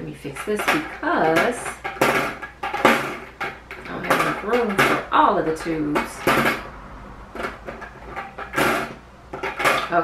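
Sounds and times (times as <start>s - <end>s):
plastic tubes clattering: 0.0s - 10.0s
plastic tubes knocking on table: 0.3s - 10.0s.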